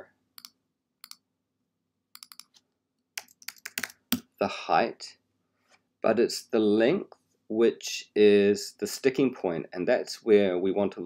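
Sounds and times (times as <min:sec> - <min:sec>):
computer mouse clicks: 0:00.4 - 0:01.2, 0:02.1 - 0:02.6, 0:03.2 - 0:04.2
typing on keyboard: 0:02.2 - 0:02.6, 0:03.2 - 0:04.2.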